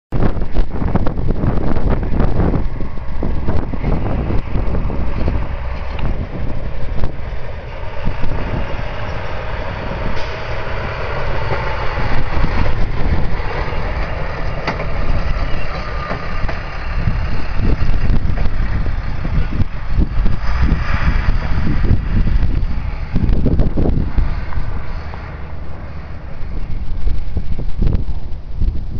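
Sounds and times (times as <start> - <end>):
wind buffeting microphone: 0.1 - 28.9
truck engine passing: 1.0 - 28.9.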